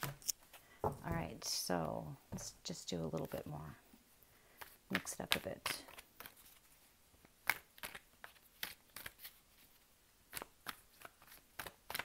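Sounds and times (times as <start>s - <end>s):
cards being shuffled: 4.6s - 12.0s.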